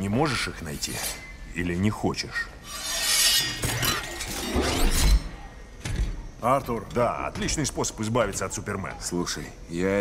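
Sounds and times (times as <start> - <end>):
shards clinking: 2.7 - 5.3
glass shattering: 2.8 - 5.2.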